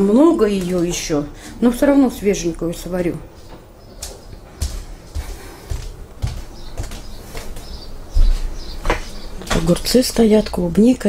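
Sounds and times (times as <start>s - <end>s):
footsteps: 3.0s - 10.3s.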